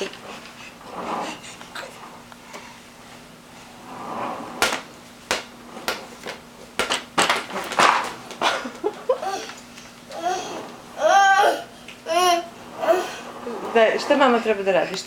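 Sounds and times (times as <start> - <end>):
ball knocking on parquet floor: 4.5 - 8.4
small child vocalizing: 10.1 - 13.3.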